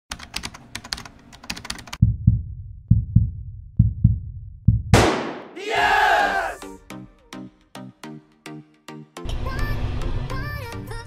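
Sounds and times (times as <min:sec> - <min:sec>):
deep low thumps: 0:02.0 - 0:05.4.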